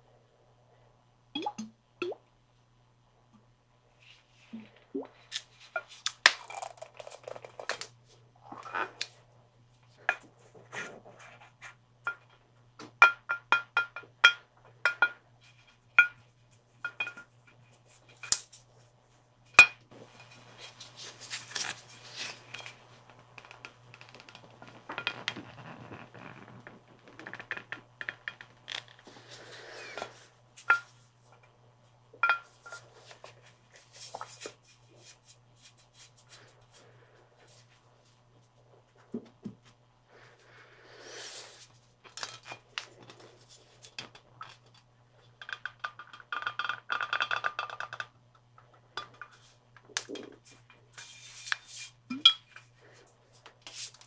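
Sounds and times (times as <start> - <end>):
swishing and rubbing on glass: 23.8 - 27.9.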